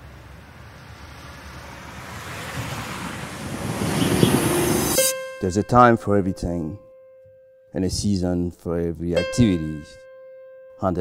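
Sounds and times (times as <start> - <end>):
rushing riser noise: 0.6 - 5.2.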